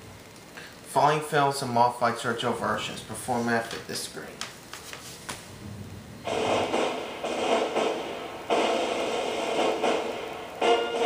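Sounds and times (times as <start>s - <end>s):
television static noise: 0.0s - 11.0s.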